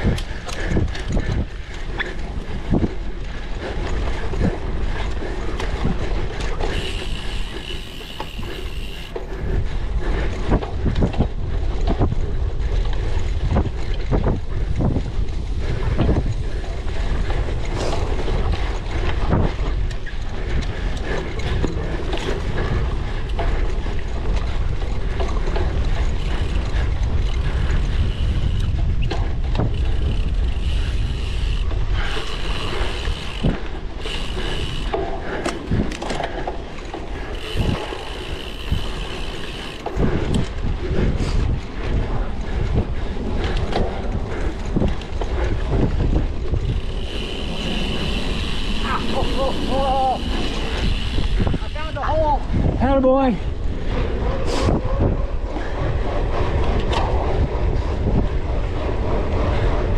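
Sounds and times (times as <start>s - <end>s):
freewheel buzzing: 0.0s - 42.7s, 43.3s - 54.1s
bike chain rattling and clicking: 0.0s - 59.9s
wind and tyre rumble: 0.0s - 59.9s.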